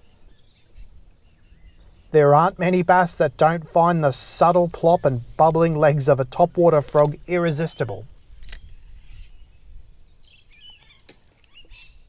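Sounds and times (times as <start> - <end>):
small birds chirping: 0.0 - 2.8, 3.8 - 12.0.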